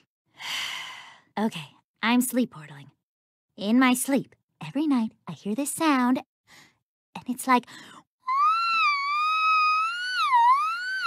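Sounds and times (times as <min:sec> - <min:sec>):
girl singing wavering falsetto: 0:08.2 - 0:11.0.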